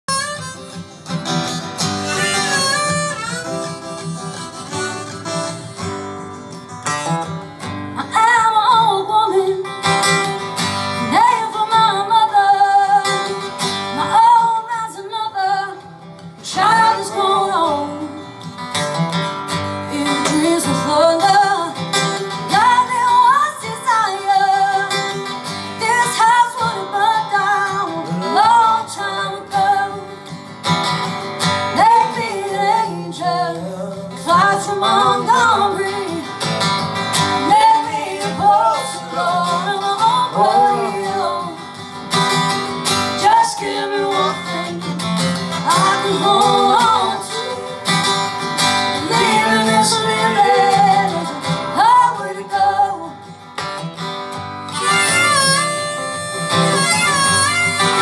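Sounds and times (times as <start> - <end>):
acoustic guitar playing: 0.0 - 58.0
person singing: 31.8 - 36.4, 37.4 - 41.8, 43.2 - 48.2, 49.0 - 53.2.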